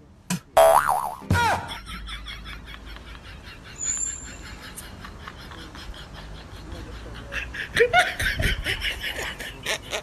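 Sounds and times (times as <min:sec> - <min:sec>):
boing sliding down in pitch: 0:00.6 - 0:01.3
wobbling cartoon boing: 0:00.6 - 0:01.4.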